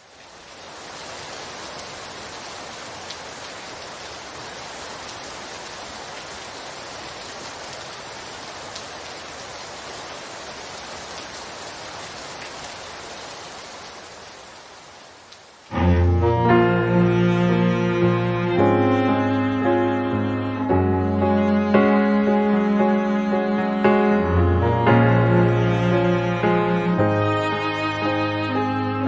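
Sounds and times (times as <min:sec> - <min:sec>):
rain drops ticking: 0:00.0 - 0:19.6
rain hissing: 0:00.0 - 0:29.0
instrumental music with low notes: 0:15.7 - 0:29.0.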